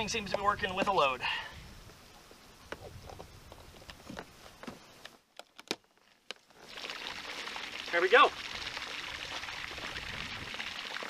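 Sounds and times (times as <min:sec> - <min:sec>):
fountain water spraying: 0:06.6 - 0:11.0.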